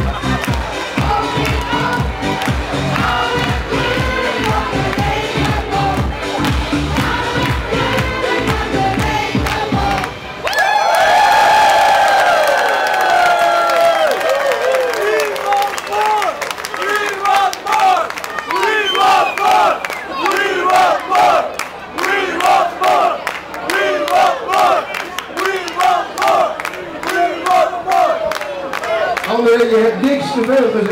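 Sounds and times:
rhythmic clapping: 0.0 - 10.6, 12.8 - 29.5.

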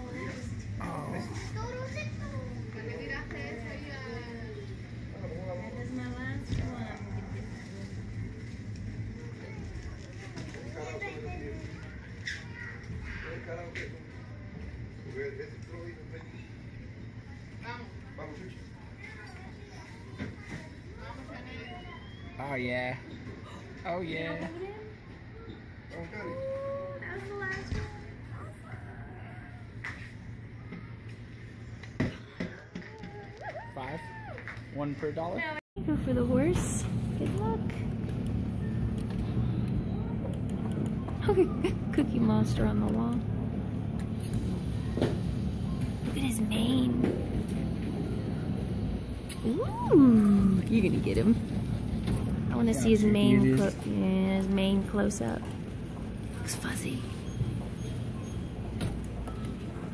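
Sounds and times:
steady low hum: 21.9 - 59.9.

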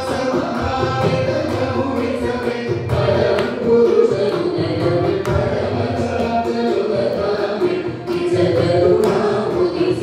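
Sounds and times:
group singing in unison: 0.0 - 10.0.

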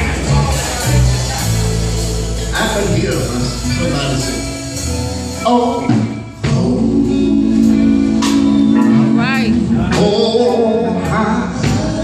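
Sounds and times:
gospel quartet singing: 0.0 - 12.0
guitar: 0.0 - 12.0.

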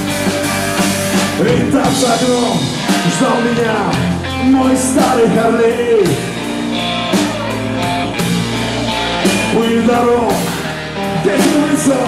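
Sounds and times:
blues-rock band playing: 0.0 - 12.0
drums: 0.0 - 12.0
electric guitar: 0.0 - 12.0.

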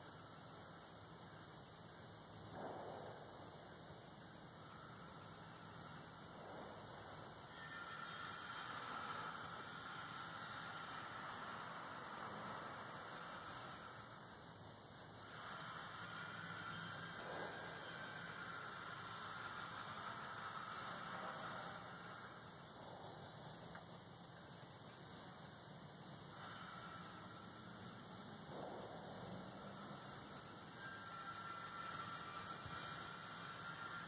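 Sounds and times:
insects trilling: 0.0 - 34.0.

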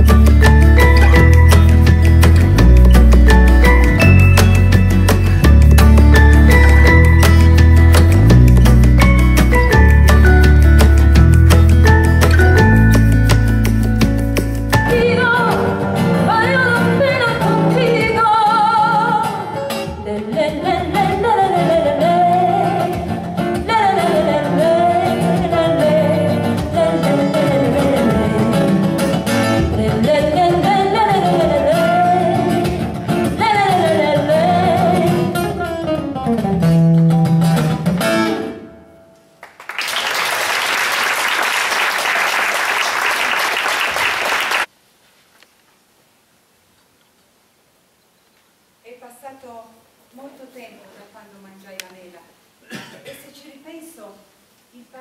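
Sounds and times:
instrumental accompaniment: 0.0 - 39.5
woman singing into a microphone: 14.9 - 35.6
audience applauding: 39.4 - 44.7.

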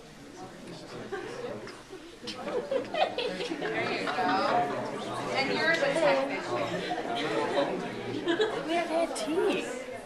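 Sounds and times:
audience members talking: 0.0 - 10.0.

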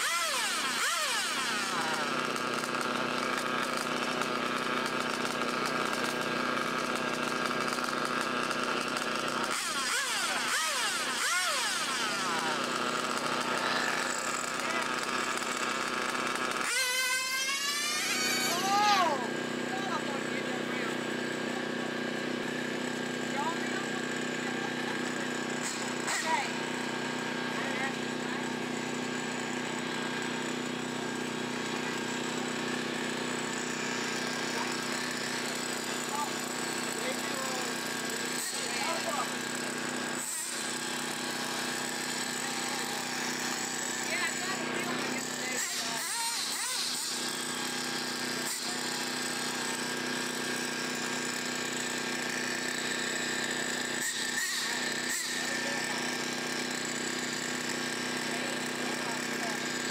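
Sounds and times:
mechanical buzzing drone: 0.0 - 59.9.

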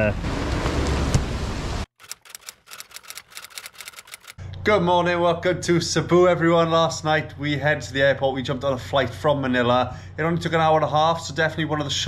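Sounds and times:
rapid light clicks: 2.0 - 4.4.

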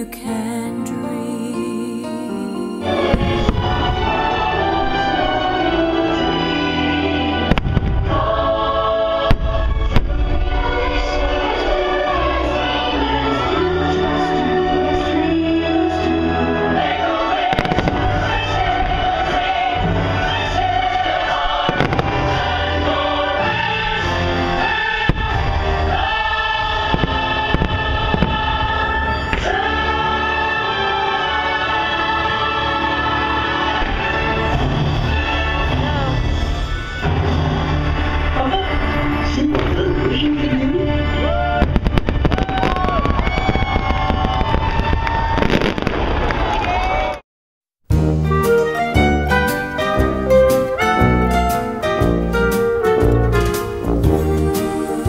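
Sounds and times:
choral and orchestral music: 0.0 - 43.3, 47.9 - 55.0
firework bangs: 3.1 - 5.4, 7.4 - 8.3, 17.3 - 20.4, 21.0 - 23.2, 24.9 - 29.5, 33.8 - 38.4, 41.6 - 46.7.

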